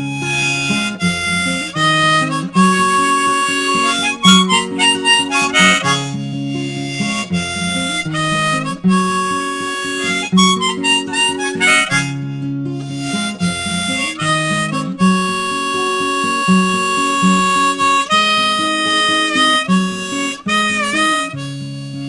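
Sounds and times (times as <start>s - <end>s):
harmonica melody: 0.0s - 22.0s
strummed acoustic guitar: 0.0s - 22.0s.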